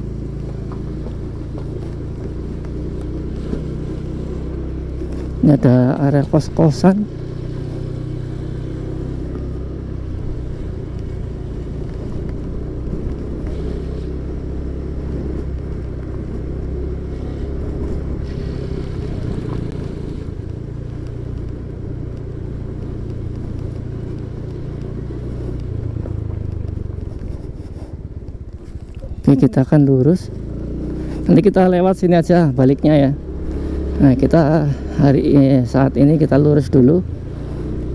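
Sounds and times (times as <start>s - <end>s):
motorcycle engine running: 0.0s - 37.9s.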